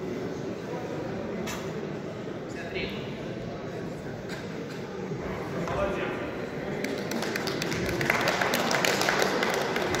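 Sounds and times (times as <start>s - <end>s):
people clapping: 6.7s - 10.0s.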